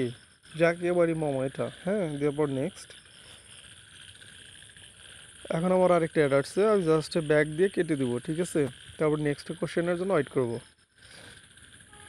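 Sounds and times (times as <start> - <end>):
high pulsed tone: 0.0 - 12.0.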